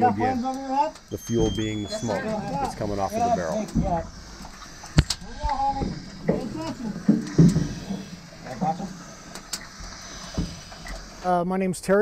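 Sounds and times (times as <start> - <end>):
indistinct voices: 0.0 - 12.0
sharp clicks: 0.4 - 11.4.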